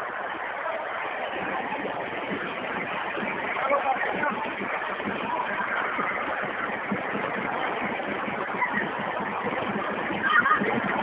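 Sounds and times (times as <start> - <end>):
distant voices: 0.0 - 11.0.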